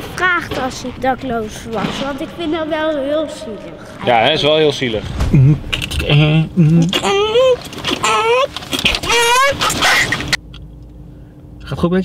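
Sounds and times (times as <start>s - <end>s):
boy's high-pitched wavering cries: 7.0s - 9.8s.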